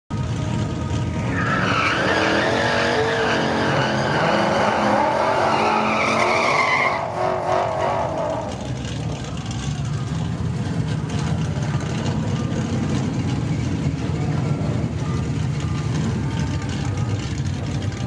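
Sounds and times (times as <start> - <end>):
car engine revving high: 1.2 - 8.9
tyres squealing: 1.2 - 8.9.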